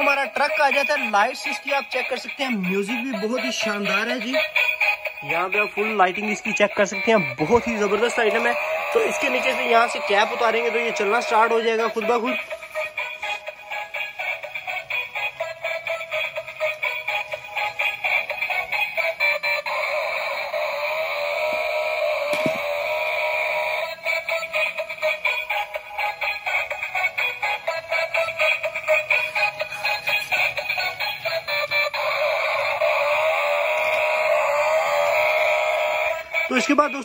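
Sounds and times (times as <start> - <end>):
toy electronic tune with singing: 0.0 - 37.0.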